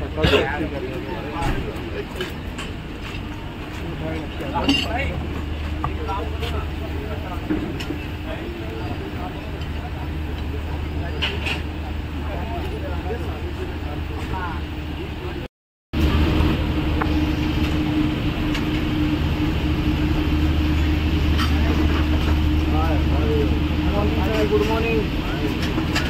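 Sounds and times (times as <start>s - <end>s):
faint voices: 0.0s - 18.7s, 19.5s - 26.0s
low engine hum: 0.0s - 26.0s.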